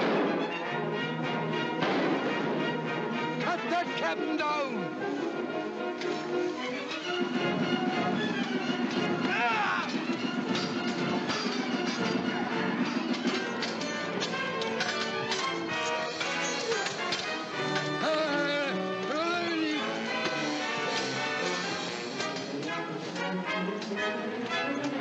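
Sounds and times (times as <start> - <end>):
dramatic orchestral score: 0.0 - 25.0
sharp knocks and clashes: 8.9 - 18.0
men shouting: 9.2 - 10.0, 17.9 - 20.0.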